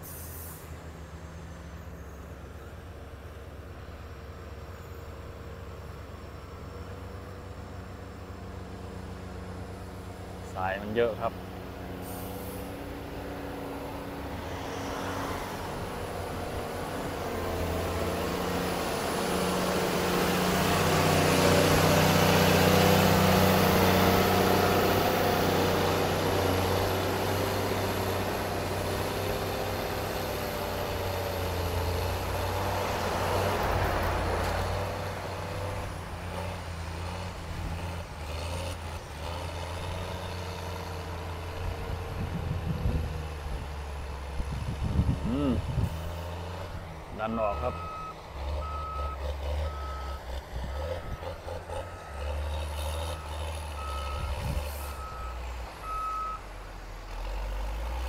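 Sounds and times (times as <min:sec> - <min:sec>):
diesel engine under load: 0:00.0 - 0:58.0.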